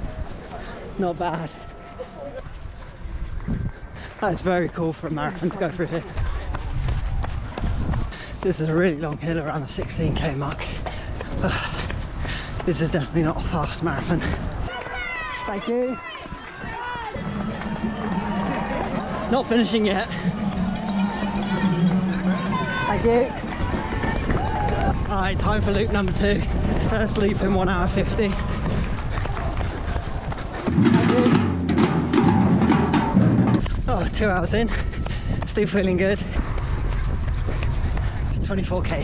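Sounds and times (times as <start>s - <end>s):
crowd voices: 0.0s - 4.2s, 11.9s - 33.9s
drum-led music: 17.1s - 24.7s, 30.6s - 33.9s.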